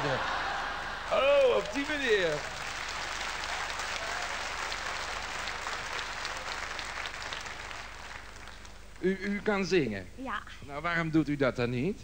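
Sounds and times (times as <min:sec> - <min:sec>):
audience applause: 0:00.0 - 0:08.8.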